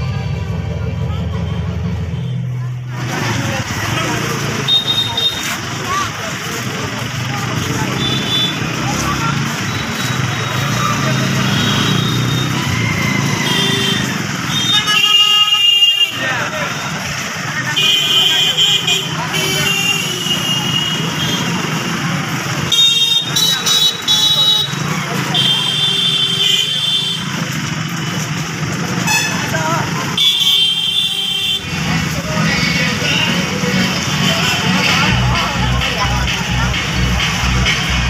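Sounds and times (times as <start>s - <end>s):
many voices talking: 0.0s - 38.0s
outdoor noise: 0.0s - 38.0s.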